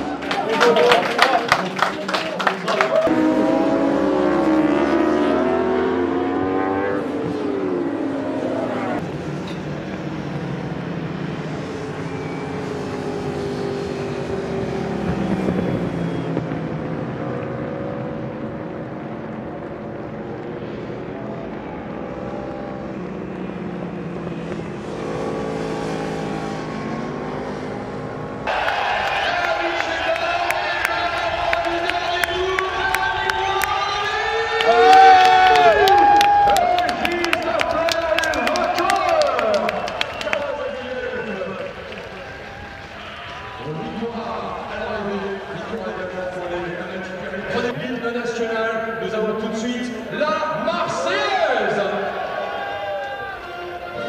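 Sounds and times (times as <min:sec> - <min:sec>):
motorcycle engines at high revs: 0:03.0 - 0:28.5.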